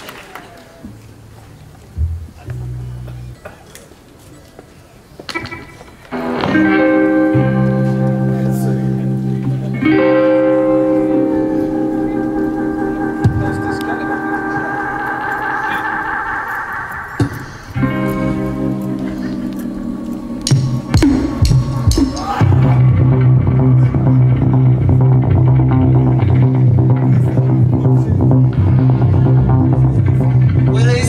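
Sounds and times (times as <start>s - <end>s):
electric guitar chords: 1.9s - 3.6s, 5.3s - 31.0s
loud bass line: 2.0s - 3.4s, 6.2s - 16.8s, 17.8s - 31.0s
rock band playing: 5.3s - 31.0s
drum hits: 20.4s - 23.0s.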